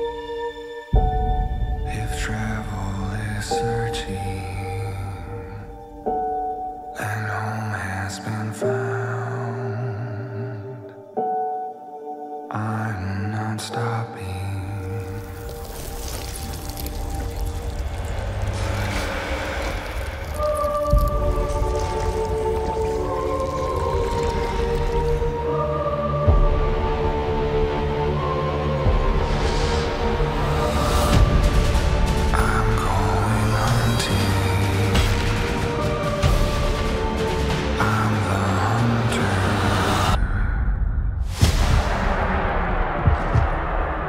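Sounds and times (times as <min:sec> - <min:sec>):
dense wash of sound effects: 0:14.9 - 0:25.9.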